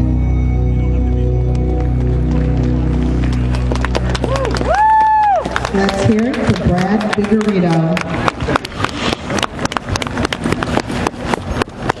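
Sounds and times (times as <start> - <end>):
audience clapping: 1.5 - 12.0.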